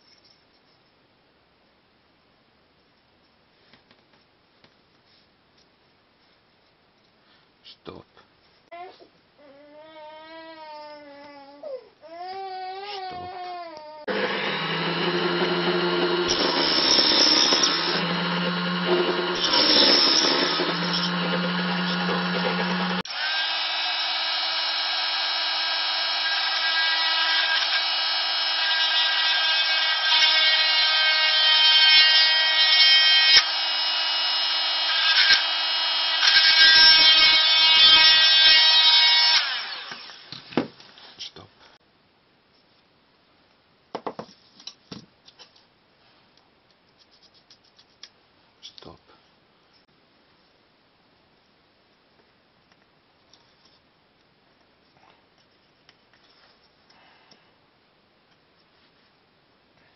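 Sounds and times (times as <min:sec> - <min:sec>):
mini drill whining into wood: 0:14.1 - 0:40.4.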